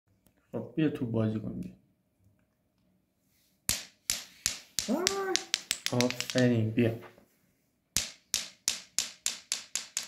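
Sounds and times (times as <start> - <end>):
ball bouncing on marble floor: 3.7 - 6.6, 8.0 - 10.0.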